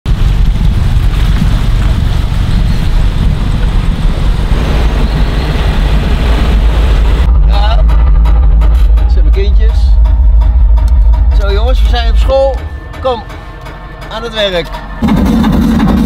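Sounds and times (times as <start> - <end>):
car engine running: 0.0 - 16.0.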